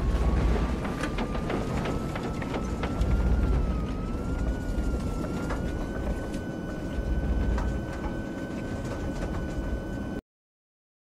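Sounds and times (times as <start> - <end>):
rattles and clicks: 0.0 - 10.1
airliner cabin roar: 0.0 - 10.2.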